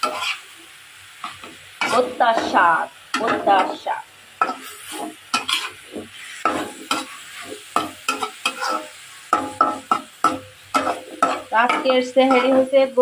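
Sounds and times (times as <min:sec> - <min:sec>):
metal spatula scraping pan: 0:00.0 - 0:00.5, 0:01.2 - 0:13.0
paste sizzling in oil: 0:00.0 - 0:13.0.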